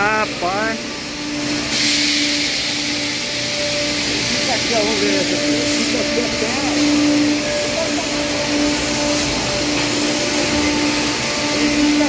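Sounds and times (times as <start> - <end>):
constant machine hum: 0.0 - 12.0.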